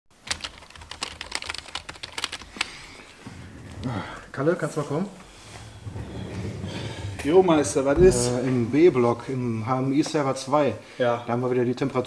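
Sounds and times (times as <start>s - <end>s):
computer keyboard typing: 0.2s - 2.8s.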